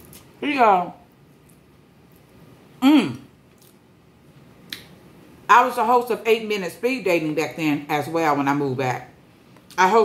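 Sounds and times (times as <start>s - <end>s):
lip smack: 4.6s - 5.0s.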